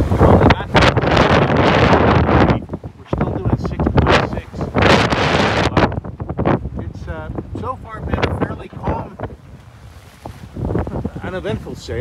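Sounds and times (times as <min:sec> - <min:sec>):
choppy water rushing along hull: 0:00.0 - 0:12.0
wind buffeting microphone: 0:00.0 - 0:12.0.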